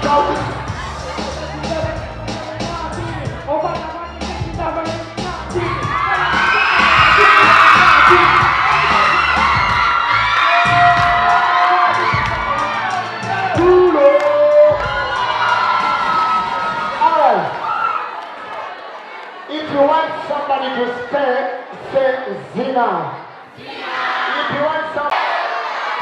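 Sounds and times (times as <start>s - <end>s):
music with a steady beat: 0.0s - 16.8s
children cheering and shouting: 5.1s - 19.4s, 23.6s - 26.0s.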